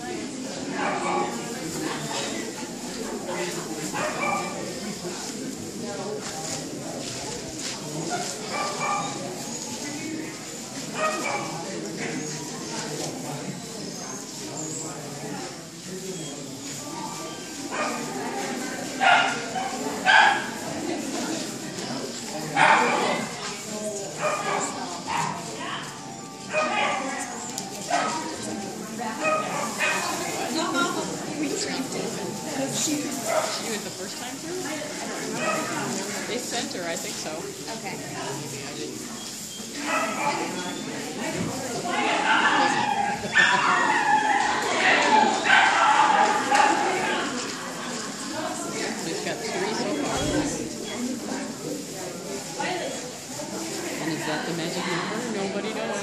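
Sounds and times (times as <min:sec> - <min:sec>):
people talking: 0:00.0 - 0:56.0
dog barking: 0:04.0 - 0:04.6, 0:19.0 - 0:20.6, 0:26.5 - 0:27.1, 0:39.9 - 0:40.5.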